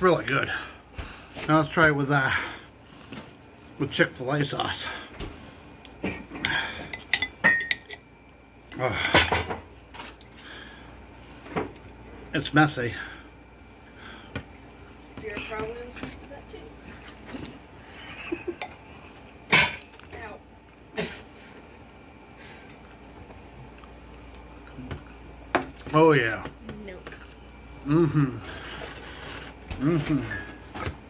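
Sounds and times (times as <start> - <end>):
person chewing food: 21.6 - 25.9.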